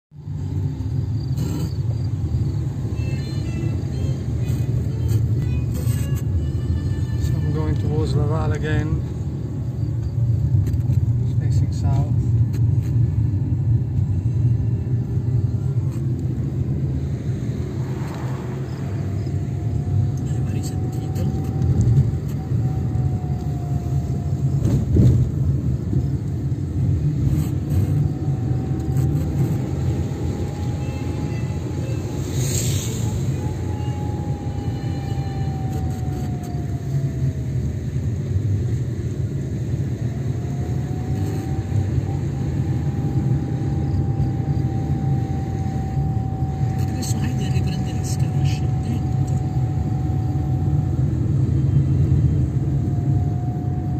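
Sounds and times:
car engine and road rumble: 0:00.0 - 0:53.9
faint thin whine: 0:00.3 - 0:37.8, 0:39.5 - 0:53.9.

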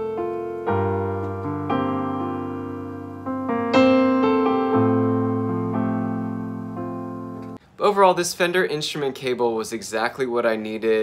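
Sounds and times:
electric piano chords: 0:00.0 - 0:07.6.

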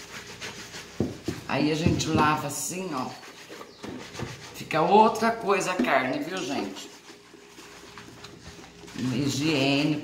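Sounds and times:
sponge scrubbing raw chicken: 0:00.0 - 0:10.0.

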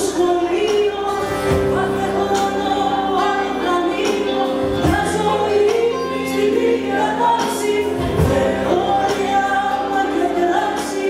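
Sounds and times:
live band with guitars and bass: 0:00.0 - 0:11.0.

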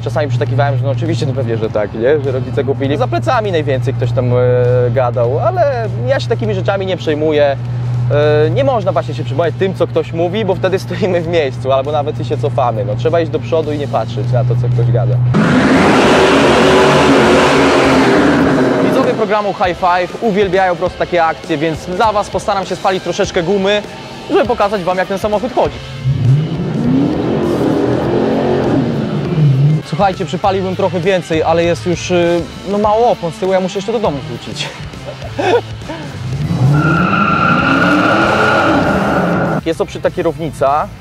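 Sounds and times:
car engine running loud: 0:14.1 - 0:19.7, 0:25.8 - 0:29.9, 0:35.9 - 0:39.6
tyres squealing: 0:36.5 - 0:39.6.

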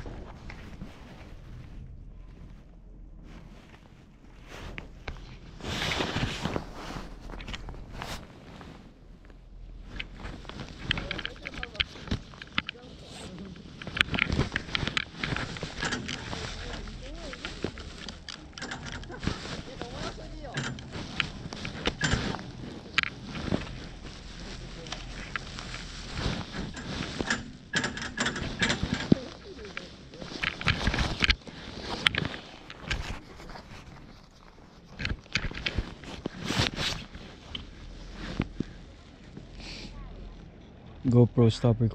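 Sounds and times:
chairlift low steady rumble: 0:00.0 - 0:41.9
sharp clicks and knocks: 0:09.8 - 0:33.2
voices: 0:10.0 - 0:32.3, 0:38.3 - 0:41.9.

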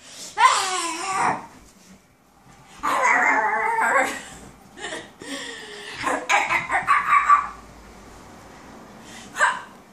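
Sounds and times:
puppy vocalising excitedly: 0:06.0 - 0:07.6.

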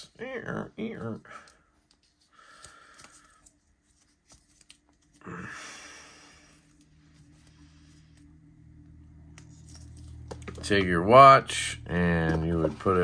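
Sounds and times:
faint handling noises: 0:00.8 - 0:05.2, 0:06.4 - 0:11.2.

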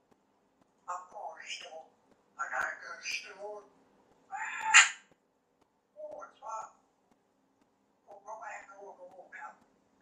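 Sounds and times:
parrot call: 0:04.3 - 0:05.1.

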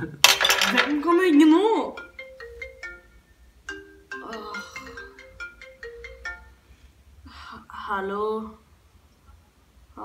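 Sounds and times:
marimba phone ringtone: 0:01.8 - 0:06.7.

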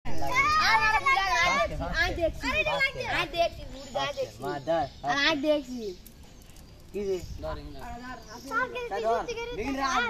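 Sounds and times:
children talking and calling out: 0:00.1 - 0:10.0.

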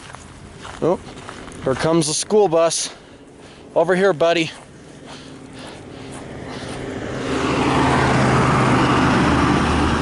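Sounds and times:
bus engine hum: 0:00.0 - 0:01.8, 0:02.8 - 0:10.0.

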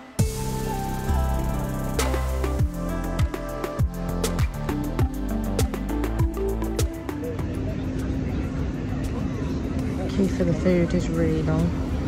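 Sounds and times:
faint chatter of people: 0:05.5 - 0:12.0.

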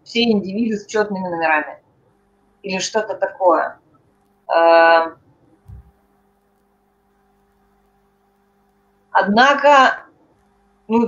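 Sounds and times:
soft low thump: 0:05.6 - 0:06.0.

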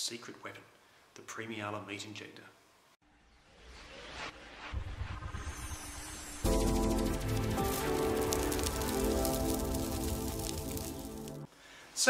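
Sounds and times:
crackle of fine clicks: 0:06.5 - 0:11.5.

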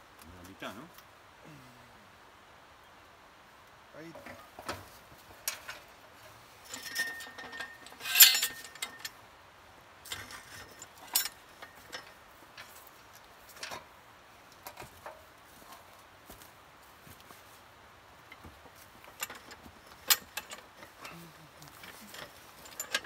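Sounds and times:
metallic clinks: 0:06.6 - 0:09.2, 0:10.1 - 0:13.8, 0:18.3 - 0:23.0
short metallic ring: 0:06.6 - 0:09.2.

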